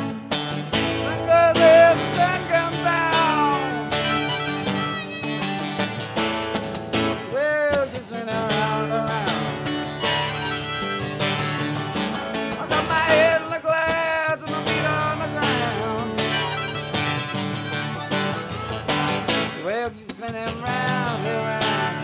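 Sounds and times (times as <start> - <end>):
strummed acoustic guitar: 0.0 - 22.0
harmonica: 3.2 - 6.4, 9.7 - 13.4, 14.0 - 19.5.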